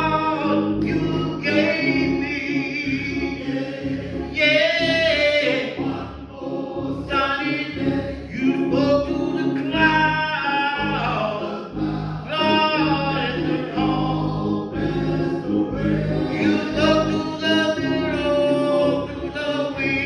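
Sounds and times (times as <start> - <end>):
men singing gospel: 0.0 - 20.0.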